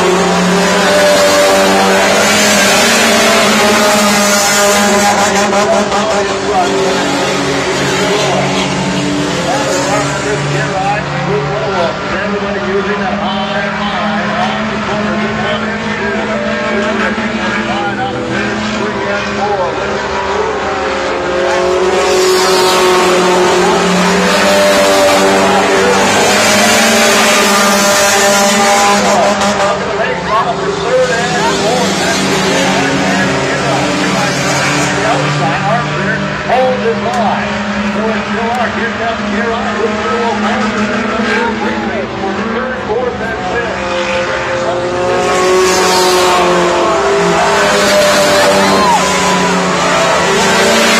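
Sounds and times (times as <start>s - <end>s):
race car engines passing: 0.0s - 50.9s.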